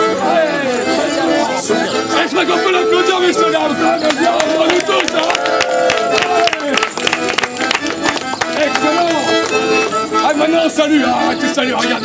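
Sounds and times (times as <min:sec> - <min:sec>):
bowed fiddle melody: 0:00.0 - 0:12.0
crowd voices: 0:00.0 - 0:12.0.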